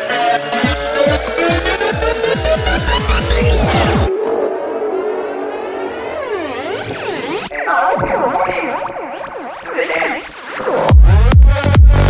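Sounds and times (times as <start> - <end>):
sweeping synth glides: 0.9 - 7.5
siren-like synth tone: 3.0 - 7.5
kick drum: 10.9 - 12.0.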